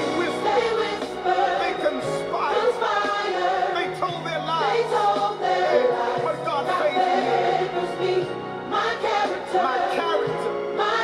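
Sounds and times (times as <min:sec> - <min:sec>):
gospel choir singing over band: 0:00.0 - 0:11.0.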